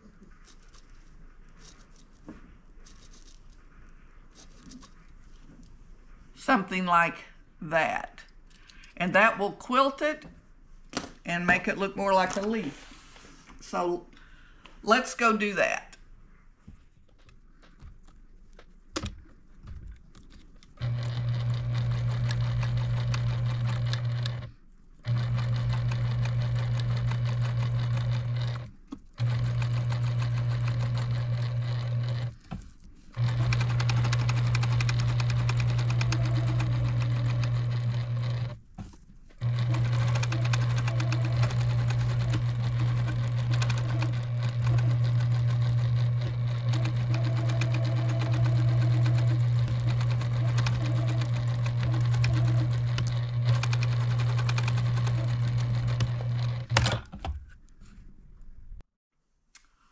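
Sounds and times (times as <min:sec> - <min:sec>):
sewing machine running: 0:20.8 - 0:32.4, 0:33.1 - 0:38.6, 0:39.4 - 0:57.0.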